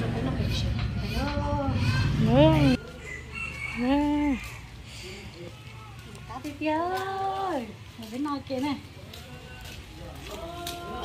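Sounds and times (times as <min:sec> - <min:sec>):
rooster crowing: 0:02.7 - 0:04.7.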